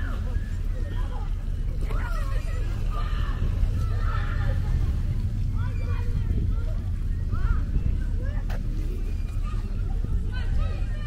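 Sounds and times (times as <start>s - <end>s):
distant voices of people and children: 0.0s - 11.0s
steady low rumble: 0.0s - 11.0s.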